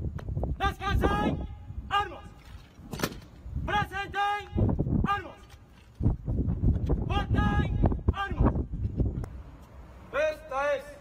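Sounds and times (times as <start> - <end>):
drill commands shouted: 0.6 - 2.4, 3.6 - 5.6, 7.0 - 8.6, 10.1 - 11.0.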